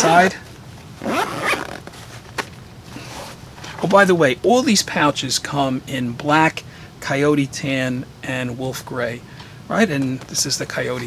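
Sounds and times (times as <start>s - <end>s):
zipper pulled open: 1.0s - 1.9s.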